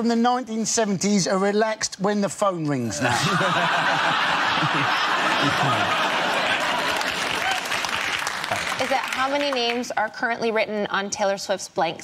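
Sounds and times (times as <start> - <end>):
audience laughing: 3.0 - 7.8
audience applauding: 4.1 - 9.9.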